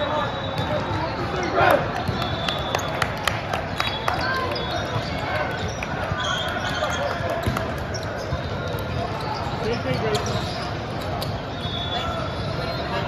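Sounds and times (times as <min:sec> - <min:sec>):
echoing crowd voices: 0:00.0 - 0:13.0.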